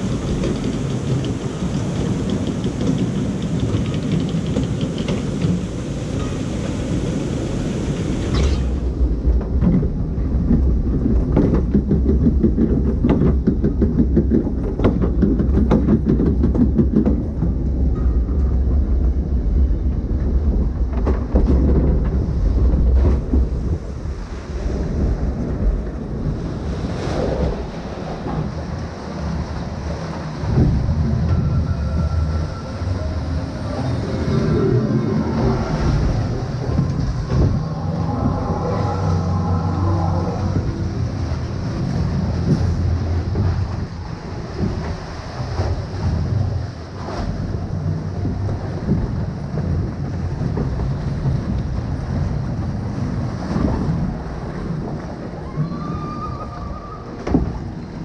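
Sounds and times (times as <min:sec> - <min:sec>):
low rumble with rapid clattering: 0:00.0 - 0:58.0
rushing and splashing water: 0:00.0 - 0:58.0.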